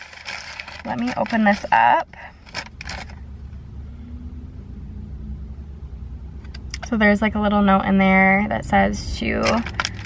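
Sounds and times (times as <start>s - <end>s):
paper parcel tearing and rustling: 0.0s - 3.2s
low road rumble: 0.0s - 10.0s.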